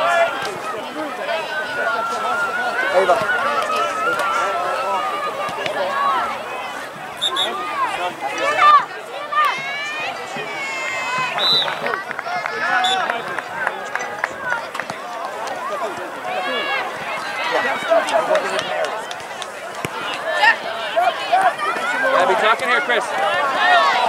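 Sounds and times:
people shouting and calling: 0:00.0 - 0:24.0.

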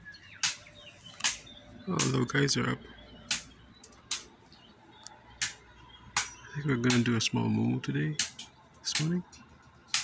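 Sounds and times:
birds chirping faintly: 0:00.0 - 0:10.0.

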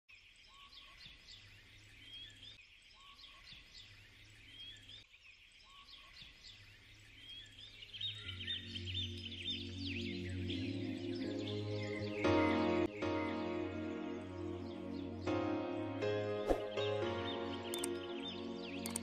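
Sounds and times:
small birds chirping: 0:00.1 - 0:15.3, 0:16.5 - 0:19.0
soft music with low notes: 0:08.4 - 0:19.0.

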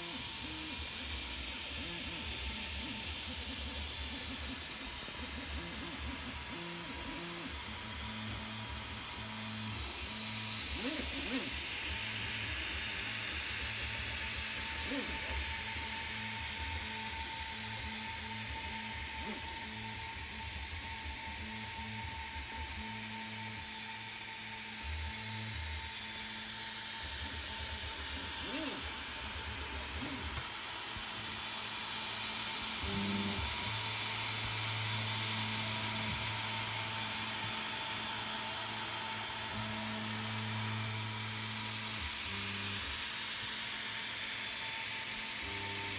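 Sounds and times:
stepper motors humming: 0:00.0 - 0:43.0
cooling fans whirring: 0:00.0 - 0:45.9.

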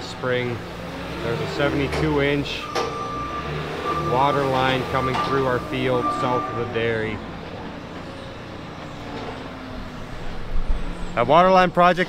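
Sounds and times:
distant loader engine running: 0:00.0 - 0:12.0.

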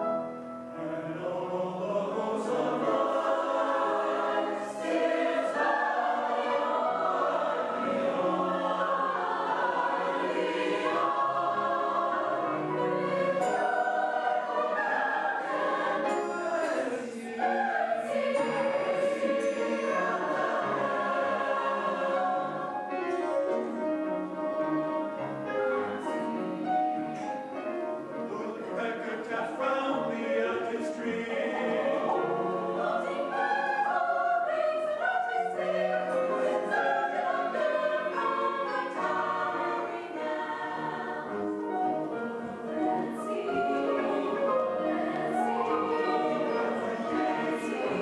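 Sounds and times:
mixed choir singing: 0:00.8 - 0:48.0.

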